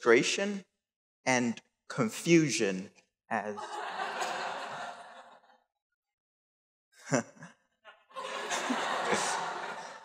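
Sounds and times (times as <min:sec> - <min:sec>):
audience laughing: 0:03.5 - 0:05.6, 0:07.9 - 0:10.0.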